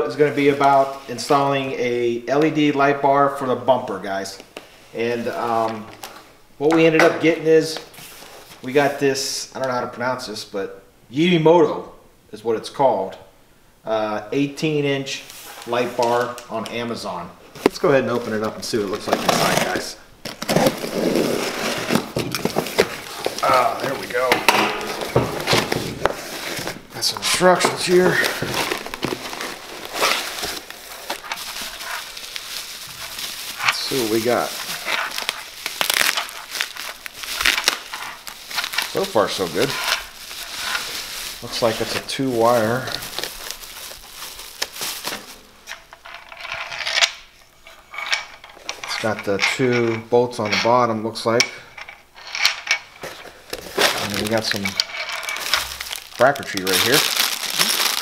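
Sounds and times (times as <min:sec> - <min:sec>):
bubble wrap rustling and crinkling: 0:15.2 - 0:46.5, 0:52.9 - 0:58.0
cardboard and tape crackling: 0:17.6 - 0:45.5, 0:53.0 - 0:58.0.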